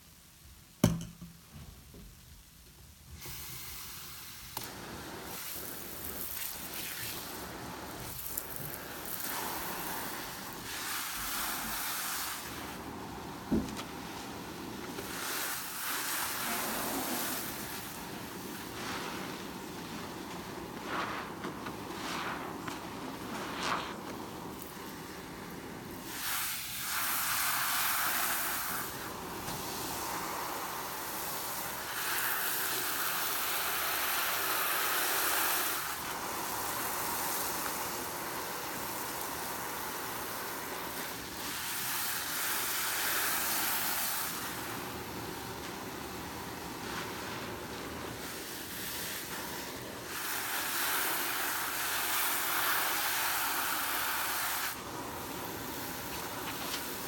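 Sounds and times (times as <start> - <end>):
foam hissing: 3.1 - 57.0
wet sponge squelching: 5.3 - 28.8, 45.5 - 53.1.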